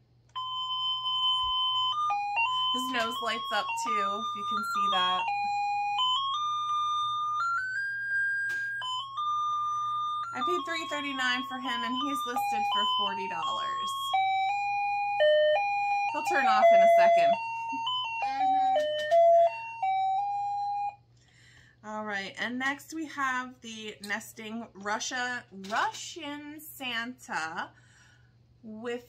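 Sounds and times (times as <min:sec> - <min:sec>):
electronic doorbell melody: 0:00.3 - 0:21.0.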